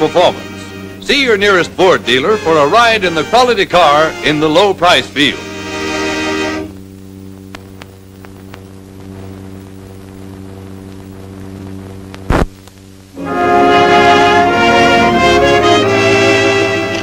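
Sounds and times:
orchestral music led by brass: 0.0s - 6.7s, 13.2s - 17.0s
low soundtrack hum: 0.0s - 17.0s
faint clicks: 7.5s - 8.7s, 12.1s - 12.9s.

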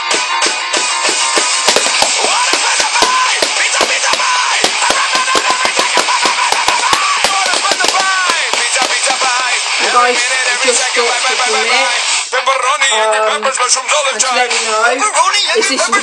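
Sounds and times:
drumsticks hitting plastic cases: 1.4s - 9.3s
recorded song with singing: 1.5s - 16.0s.

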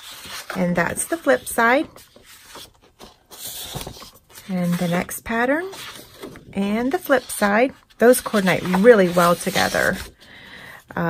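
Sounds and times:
paper sheets sliding and rustling: 0.0s - 10.1s.

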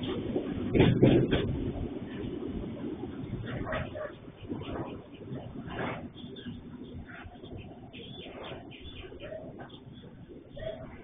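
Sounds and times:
low background rumble: 0.0s - 11.0s
dove cooing: 3.6s - 11.0s.

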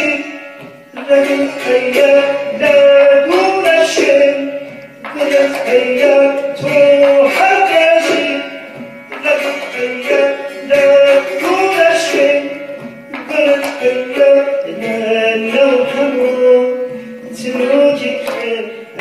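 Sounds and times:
hand drum strokes: 0.0s - 19.0s
quick plucked strings: 0.0s - 19.0s.

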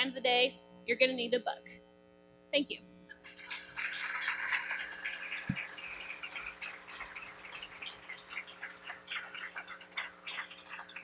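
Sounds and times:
audience applauding: 3.5s - 11.0s.

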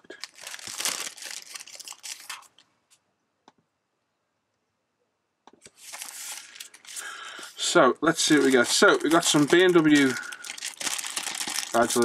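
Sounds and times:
cellophane bag crinkling: 0.0s - 2.6s, 5.8s - 12.0s.

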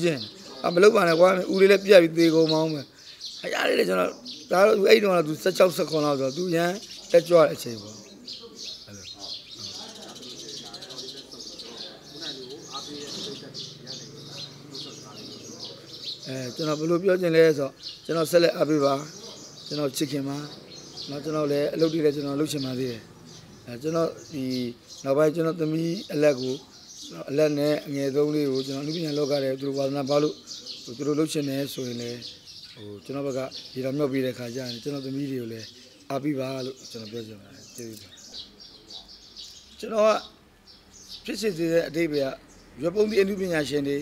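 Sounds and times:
man talking: 0.0s - 38.1s, 39.8s - 40.3s, 41.2s - 44.0s
birds chirping: 0.0s - 44.0s.

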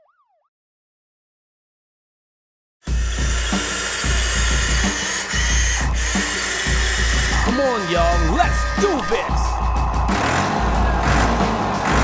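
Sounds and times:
toy excavator motor whine: 2.8s - 8.8s
background music with pulsing bass: 2.9s - 12.0s
person speaking: 7.3s - 9.6s.

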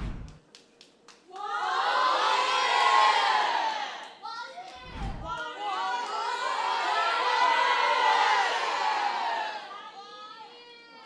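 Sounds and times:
crowd cheering: 1.3s - 10.1s.

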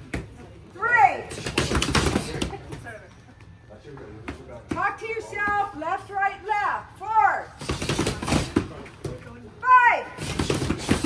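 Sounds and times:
boxing gloves smacking mitts: 1.3s - 2.6s, 7.6s - 9.2s, 10.2s - 11.0s.

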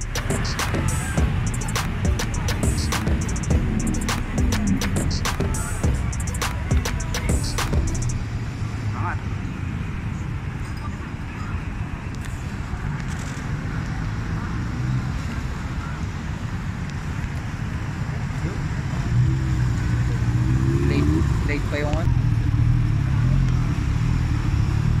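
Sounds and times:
engine idling: 0.0s - 8.2s
people's voices: 0.0s - 22.3s.

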